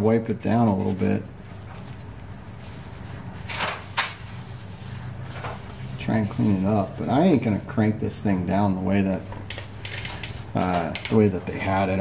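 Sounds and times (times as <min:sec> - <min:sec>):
steady low hum: 0:00.0 - 0:12.0
rag rubbing metal part: 0:00.6 - 0:07.7.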